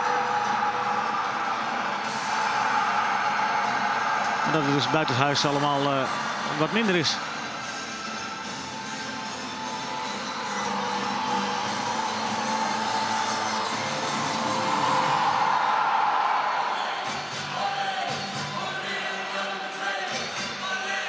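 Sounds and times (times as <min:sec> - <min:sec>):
crowd cheering: 0:00.0 - 0:21.0
music over stadium loudspeakers: 0:00.0 - 0:21.0.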